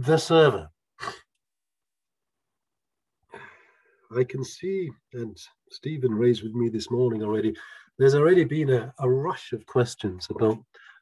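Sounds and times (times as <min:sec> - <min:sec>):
breath into microphone: 0:03.3 - 0:04.1, 0:07.6 - 0:08.0.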